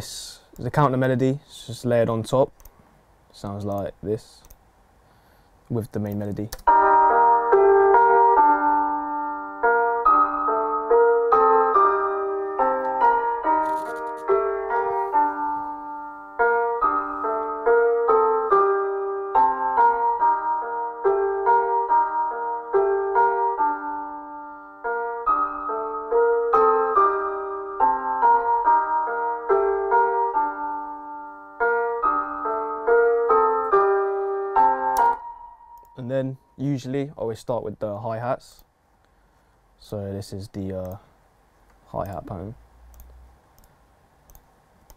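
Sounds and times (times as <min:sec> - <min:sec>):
piano playing a simple melody: 0:06.7 - 0:36.6.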